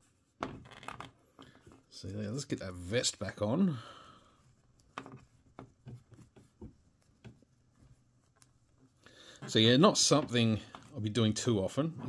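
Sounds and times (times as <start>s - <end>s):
fabric rustling: 4.3s - 11.1s.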